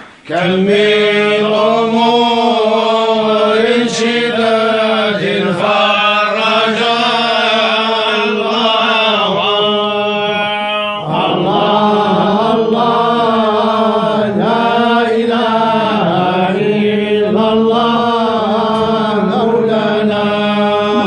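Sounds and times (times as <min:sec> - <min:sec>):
men chanting in unison: 0:00.2 - 0:21.0.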